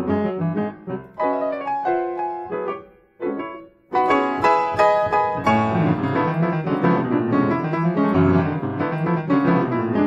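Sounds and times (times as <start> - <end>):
grand piano playing: 0.0 - 10.0.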